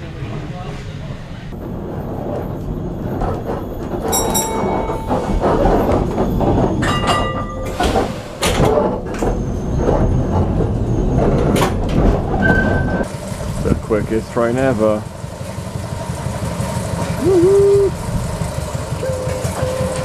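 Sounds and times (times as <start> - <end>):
tram rumble and rattle: 0.0 - 20.0
wheel squeals: 2.0 - 13.1, 17.0 - 20.0
wheels knocking on track: 2.3 - 20.0.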